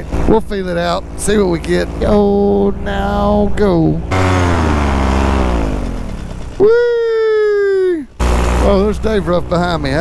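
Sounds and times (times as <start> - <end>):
paramotor engine throttling down: 0.0 - 10.0.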